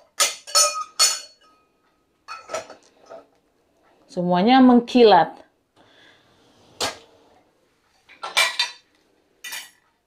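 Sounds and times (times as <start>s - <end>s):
glasses and dishes clinking: 0.0s - 2.8s, 8.2s - 9.8s.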